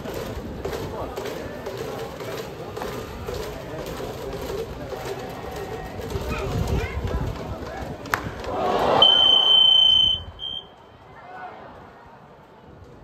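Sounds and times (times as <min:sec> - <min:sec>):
crowd voices: 0:00.0 - 0:13.0
shrill whistle: 0:09.0 - 0:10.8.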